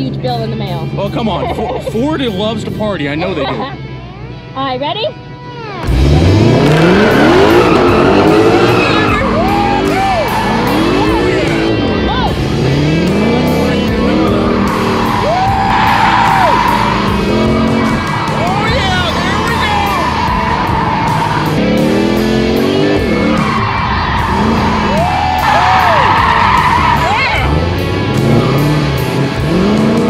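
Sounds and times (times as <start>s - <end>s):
car engine revving: 0.0s - 30.0s
music with steady beat: 5.5s - 30.0s
tyres squealing: 13.9s - 21.8s, 22.7s - 27.6s.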